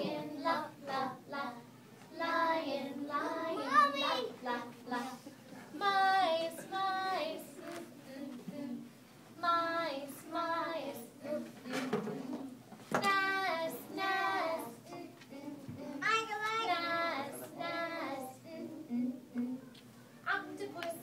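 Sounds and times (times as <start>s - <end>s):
young child singing: 0.0s - 5.2s, 13.0s - 21.0s.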